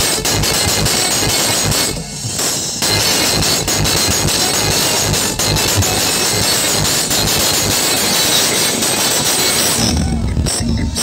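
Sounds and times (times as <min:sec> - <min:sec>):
loud hard-bass music: 0:00.0 - 0:11.0.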